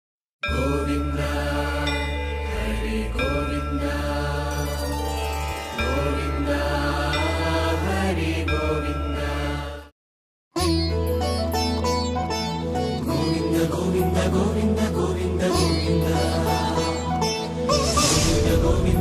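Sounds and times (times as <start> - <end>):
chanted mantra singing: 0.4 - 5.0, 5.7 - 9.9, 13.0 - 17.2.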